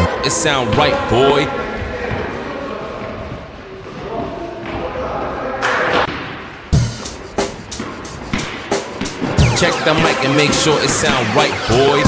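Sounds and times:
background music: 0:00.0 - 0:01.5, 0:06.7 - 0:12.0.

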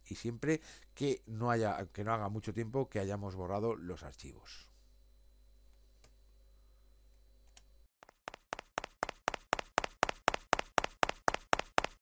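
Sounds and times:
evenly spaced taps: 0:08.0 - 0:12.0.

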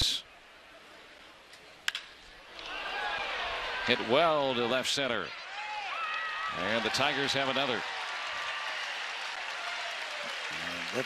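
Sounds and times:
crowd cheering: 0:02.4 - 0:11.0.

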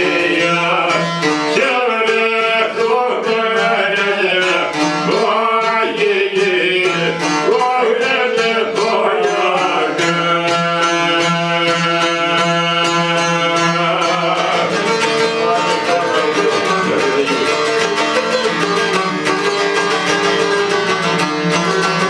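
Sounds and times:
man singing: 0:00.0 - 0:18.1
plucked folk lutes: 0:00.0 - 0:22.0.

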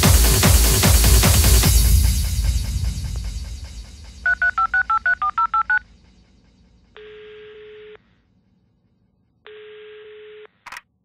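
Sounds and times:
techno music: 0:00.0 - 0:06.0
touch-tone keypad beeps: 0:04.3 - 0:05.8.

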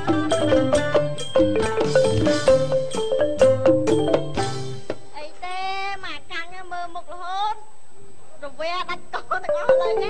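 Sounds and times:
woman singing unaccompanied: 0:00.0 - 0:01.6, 0:09.2 - 0:10.0.

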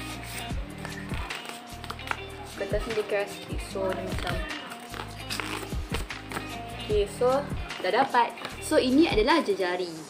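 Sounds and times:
stiff paper crackling: 0:00.0 - 0:06.6
background music low tone: 0:00.0 - 0:09.3.

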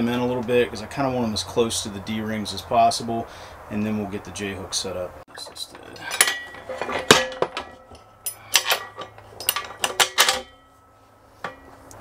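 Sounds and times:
metal hardware clinking: 0:05.7 - 0:12.0.

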